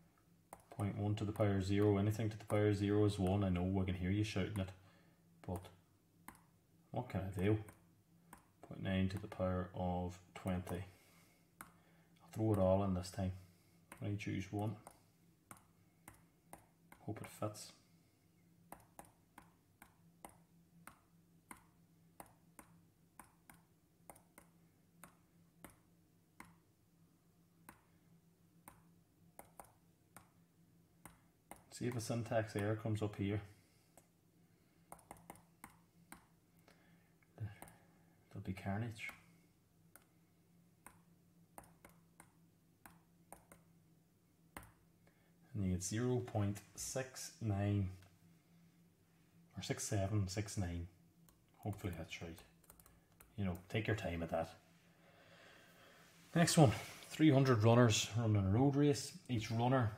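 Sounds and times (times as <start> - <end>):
faint low hum: 0.0 - 59.9
computer mouse clicks: 14.8 - 17.0, 18.7 - 25.8, 26.4 - 26.6, 27.6 - 27.9, 28.6 - 30.4, 31.0 - 32.1, 34.9 - 36.3, 37.6 - 37.8, 39.9 - 40.1, 41.6 - 43.7, 52.6 - 53.6.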